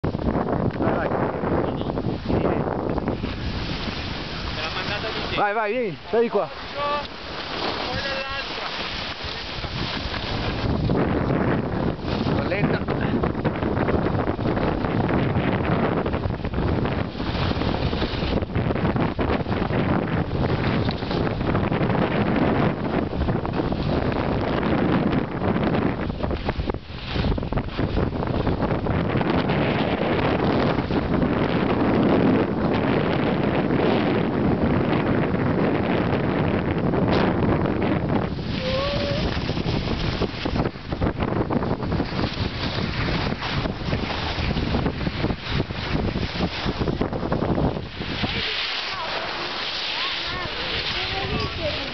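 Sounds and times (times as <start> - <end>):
wind rushing over microphone: 0.0 - 51.9
skis scraping on snow: 3.1 - 5.5, 6.2 - 12.5, 17.0 - 18.4, 38.3 - 40.8, 41.6 - 51.9.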